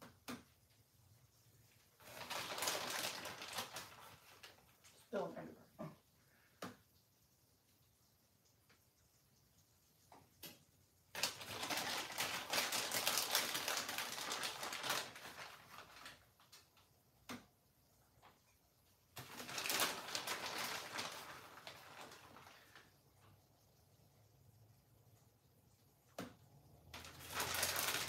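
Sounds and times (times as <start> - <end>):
plastic bag crinkling: 2.0 - 5.2, 11.1 - 16.8, 19.2 - 23.0, 26.9 - 28.0.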